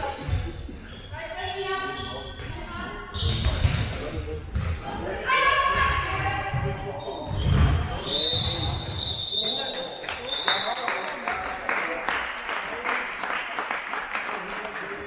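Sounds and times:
ball bouncing on hall floor: 0:02.3 - 0:05.0, 0:05.7 - 0:09.1.

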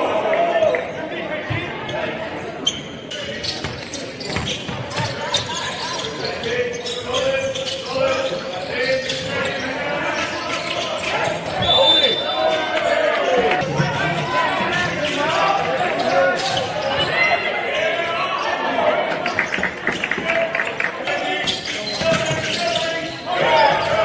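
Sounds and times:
players calling out: 0:00.0 - 0:24.0
shoes squeaking: 0:02.6 - 0:12.7, 0:21.1 - 0:24.0.

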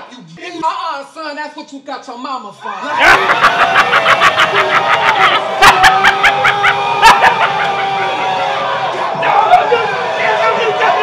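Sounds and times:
person laughing: 0:02.8 - 0:08.1.

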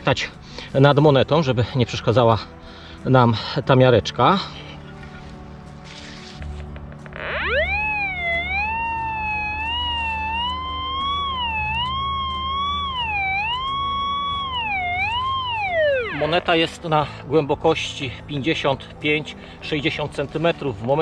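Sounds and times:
metal detector whistle tone: 0:07.2 - 0:16.5.

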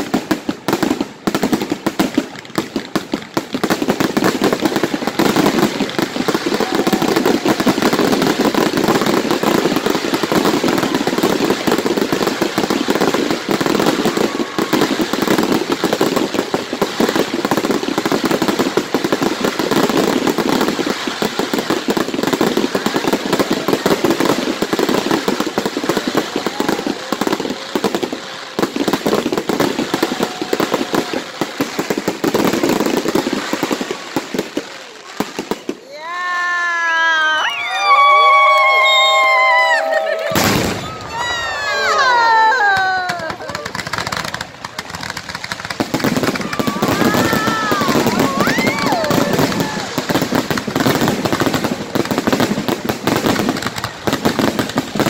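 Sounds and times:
fireworks banging and crackling: 0:00.0 - 0:55.0.

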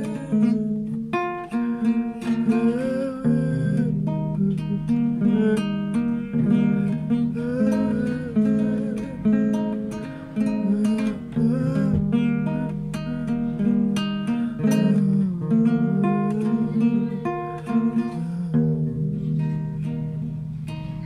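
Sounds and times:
acoustic guitar chords: 0:00.0 - 0:21.0.

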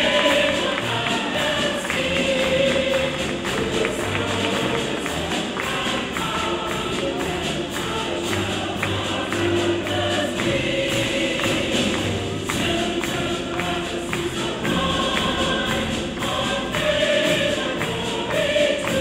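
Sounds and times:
choir singing with orchestra: 0:00.0 - 0:19.0
hand-clapping to the beat: 0:00.0 - 0:19.0.

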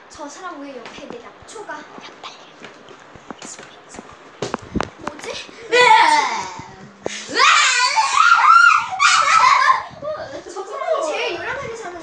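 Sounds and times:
child's vocal sound: 0:05.2 - 0:10.4.

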